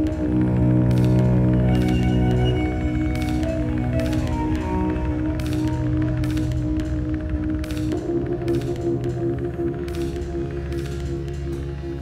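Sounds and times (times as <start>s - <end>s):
bowed cello sustained notes: 0.0s - 10.8s
ambient backing: 0.0s - 12.0s.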